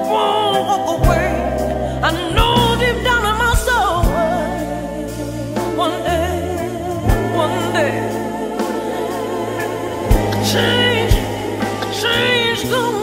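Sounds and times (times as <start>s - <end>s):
bass notes: 0.0s - 13.0s
woman singing: 0.0s - 13.0s.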